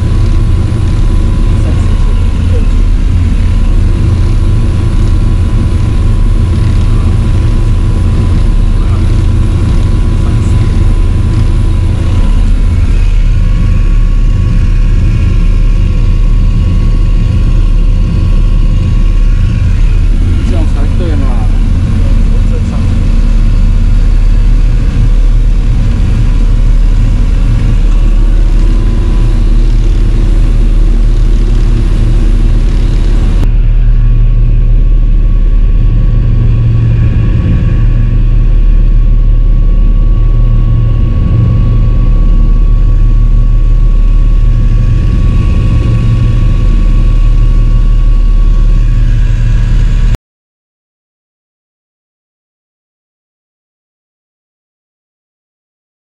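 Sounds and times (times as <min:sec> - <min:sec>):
boat engines droning: 0:00.0 - 0:50.1.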